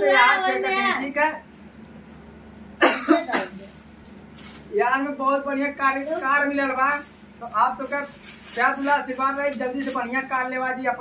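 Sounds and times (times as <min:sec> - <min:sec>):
person coughing: 0:02.8 - 0:03.7.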